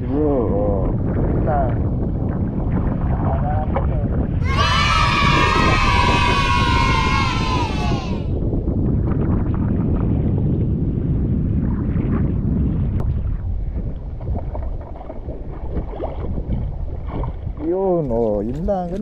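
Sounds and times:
wind buffeting microphone: 0.0s - 19.0s
water sloshing against hull: 13.0s - 19.0s.

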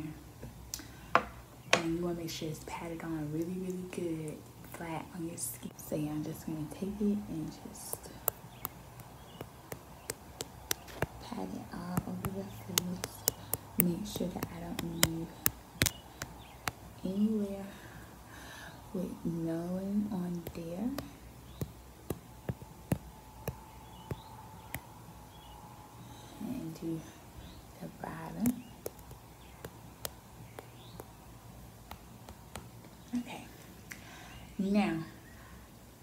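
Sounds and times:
powder applicator tapping microphone: 7.8s - 16.9s, 20.3s - 24.9s, 28.4s - 31.2s.

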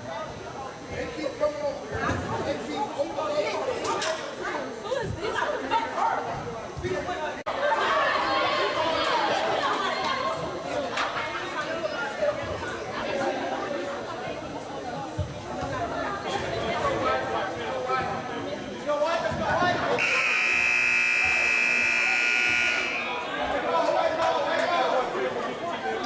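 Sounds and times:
chatter of many voices echoing: 0.0s - 26.0s.

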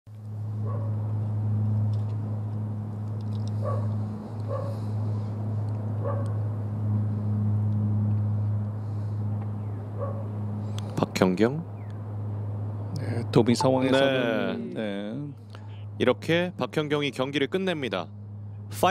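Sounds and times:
low hum: 0.1s - 11.0s, 11.6s - 16.6s.

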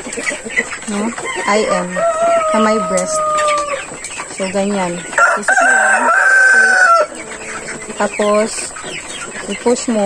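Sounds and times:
chicken clucking: 0.0s - 10.0s
chick high-pitched call: 1.3s - 3.9s.

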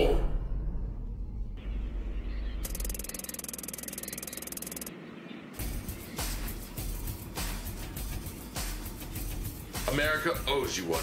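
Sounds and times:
rapid typing clicks: 2.7s - 4.9s.

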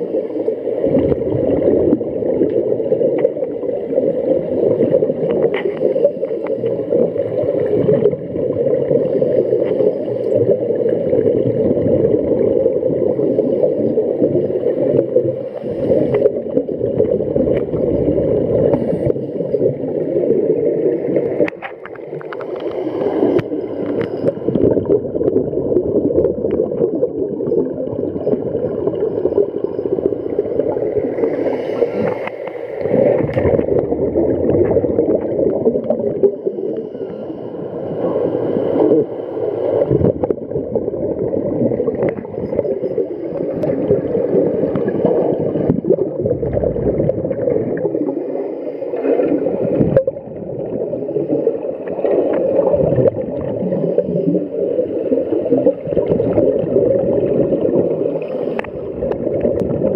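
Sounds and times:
underwater regulator bubbles: 0.0s - 59.9s.

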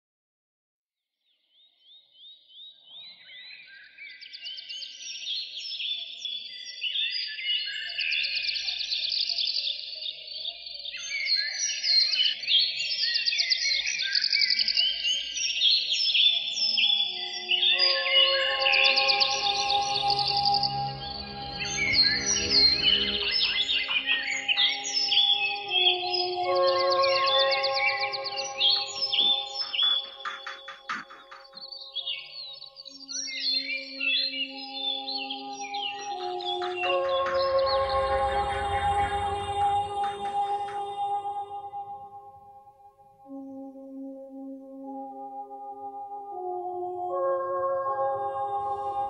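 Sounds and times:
birds chirping and trilling: 1.5s - 43.8s
held music chords: 17.7s - 32.0s, 34.9s - 49.0s.

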